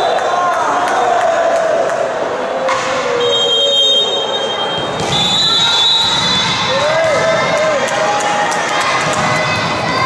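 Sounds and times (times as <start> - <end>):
crowd noise: 0.0 - 10.0
shrill whistle: 3.2 - 6.7.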